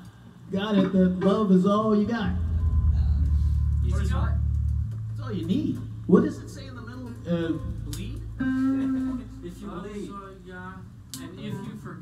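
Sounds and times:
low electric amplifier tone: 0.9 - 11.1.

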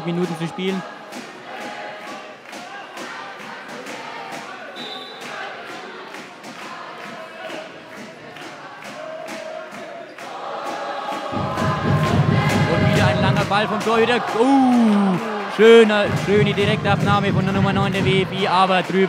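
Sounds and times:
crowd chanting and singing: 0.0 - 19.0.

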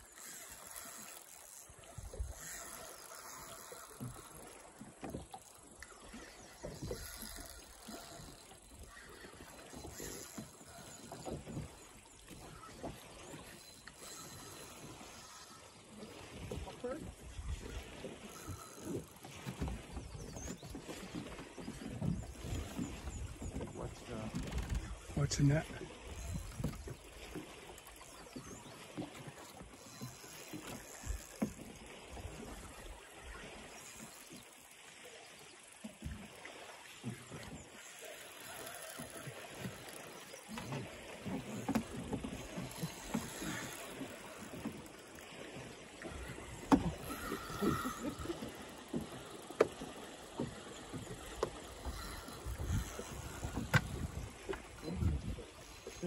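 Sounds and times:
waves lapping against boat hull: 0.0 - 56.0.

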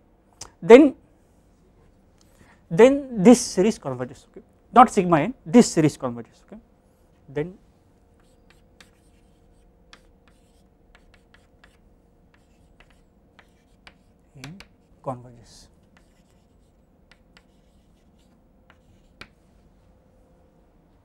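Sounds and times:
chalk tapping and scratching on blackboard: 8.2 - 15.0, 15.7 - 19.4.

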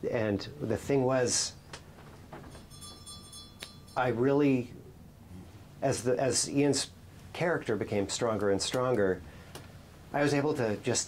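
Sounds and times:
high ringing tone: 2.5 - 4.8.

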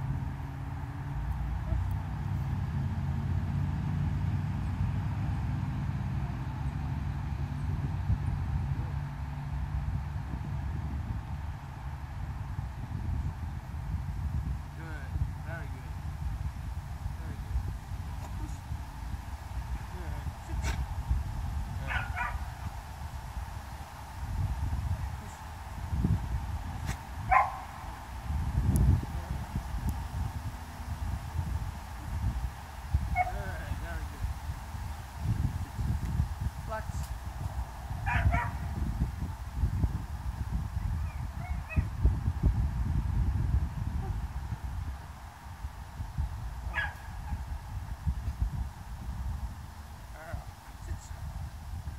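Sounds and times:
wind rumbling on microphone: 0.0 - 51.9.

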